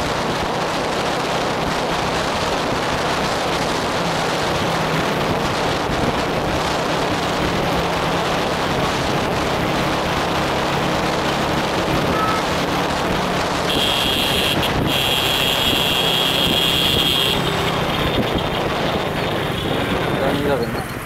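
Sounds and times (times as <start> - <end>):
wind noise on microphone: 0.0 - 21.0.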